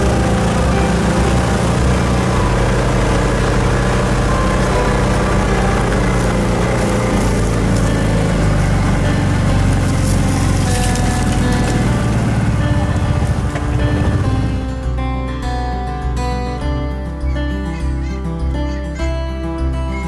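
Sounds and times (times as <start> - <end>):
off-road vehicle engine running: 0.0 - 18.0.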